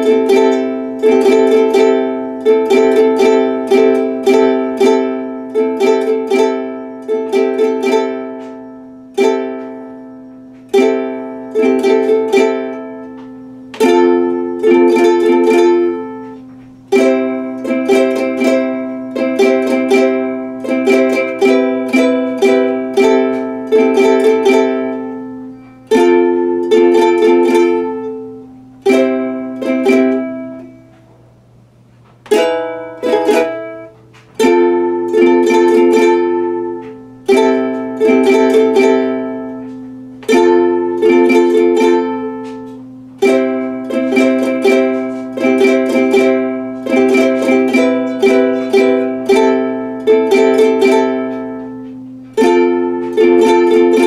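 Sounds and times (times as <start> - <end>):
ukulele strumming chords: 0.0 - 54.0.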